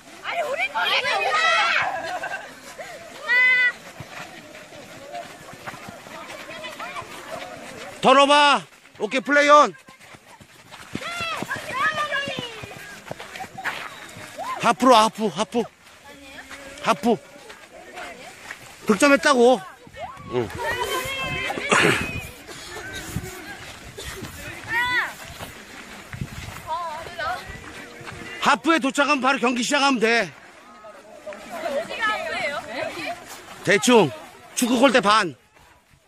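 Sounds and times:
running footsteps on dirt: 0.0s - 36.0s
girls calling out: 0.1s - 4.1s, 9.7s - 14.6s, 19.6s - 23.8s, 24.4s - 25.2s, 31.3s - 34.6s.

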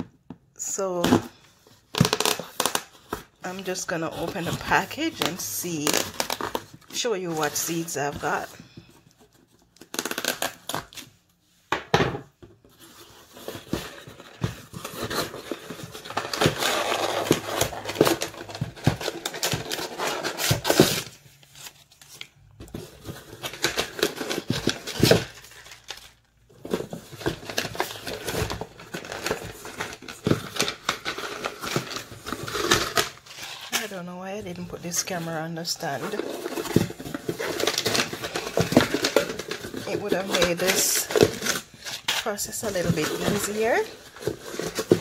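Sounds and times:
paper and cardboard crinkling: 1.8s - 11.1s, 12.6s - 45.0s.

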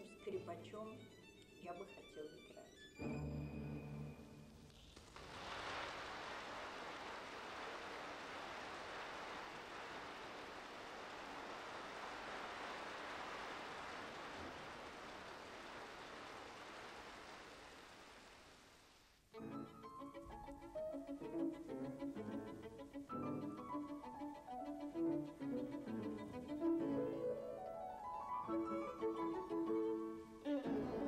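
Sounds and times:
audience applause: 4.8s - 18.8s.

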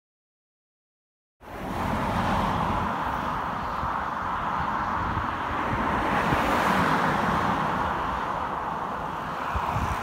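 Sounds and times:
cars passing on road: 1.4s - 10.0s.

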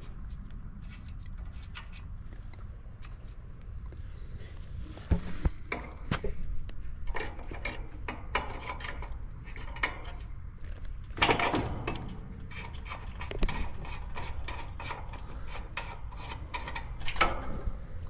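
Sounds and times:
wrench clicking and scraping on metal: 0.8s - 2.1s, 11.2s - 17.5s.

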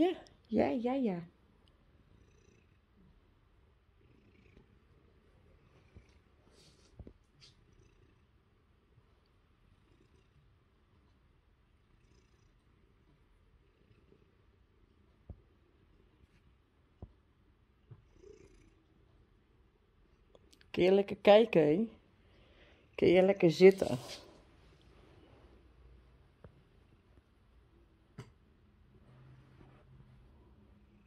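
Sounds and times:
cat purring: 1.6s - 20.6s, 23.4s - 31.0s.

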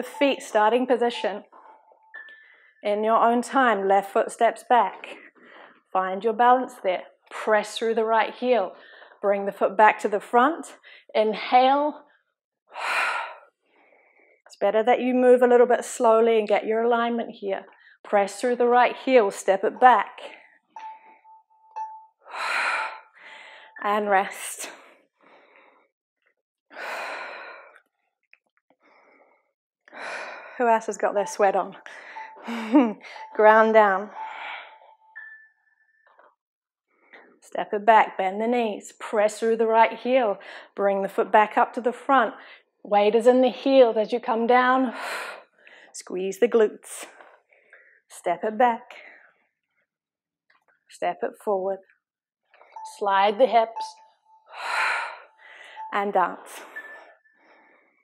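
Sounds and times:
woman breathing loudly: 22.3s - 23.8s, 26.7s - 27.8s, 28.9s - 30.6s, 54.5s - 55.8s.

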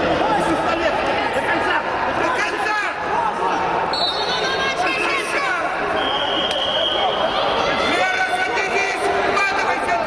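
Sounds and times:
people shouting: 2.6s - 9.9s.

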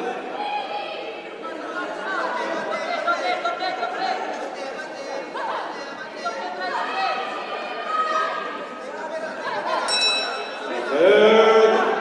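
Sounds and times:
crowd shouting in echoing hall: 0.0s - 12.0s.

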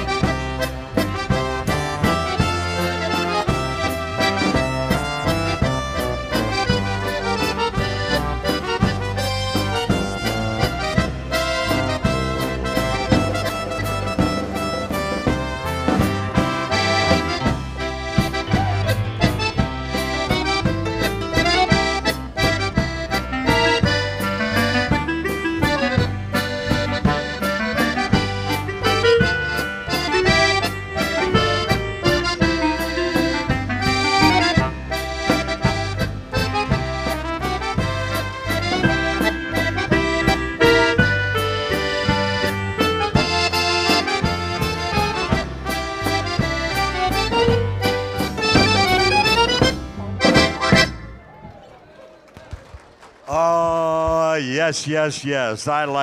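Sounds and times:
bass line: 0.0s - 51.4s
accordion band playing: 0.0s - 52.0s.

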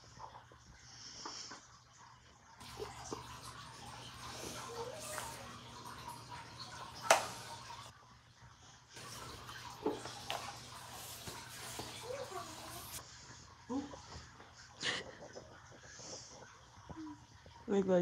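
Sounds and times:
wet mop scrubbing tiled floor: 2.6s - 8.0s, 8.6s - 17.1s.

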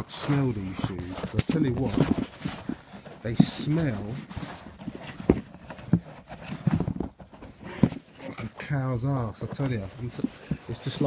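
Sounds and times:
knocks and bumps from handling: 0.7s - 8.7s.

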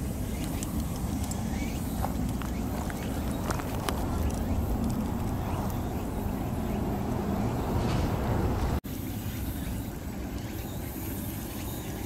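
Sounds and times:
wind buffeting microphone: 0.0s - 8.8s.

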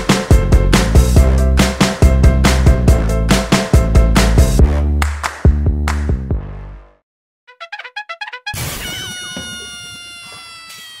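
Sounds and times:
long falling animal cry: 8.6s - 11.0s.

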